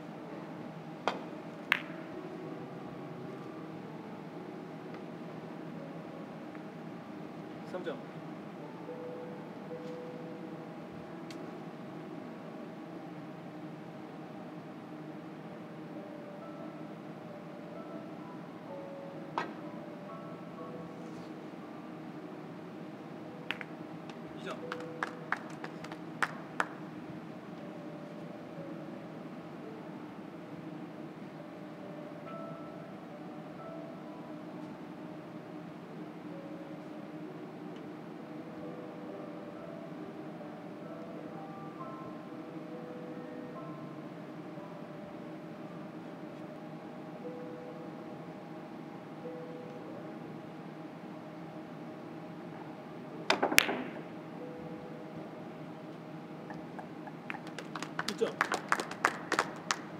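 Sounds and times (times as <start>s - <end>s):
billiard balls clicking: 53.3s - 54.1s.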